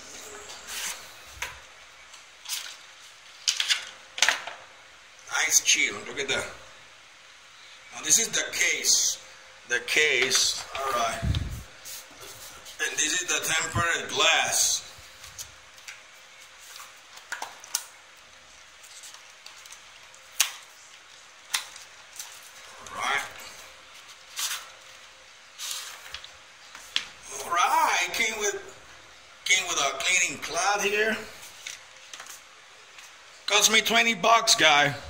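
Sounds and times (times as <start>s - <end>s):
plastic packaging rustling and scraping: 0.0s - 4.0s, 15.0s - 27.2s.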